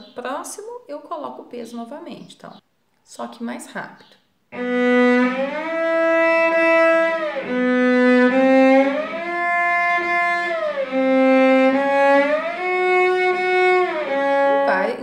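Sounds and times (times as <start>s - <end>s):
cello bowed with glissandos: 4.6s - 15.0s.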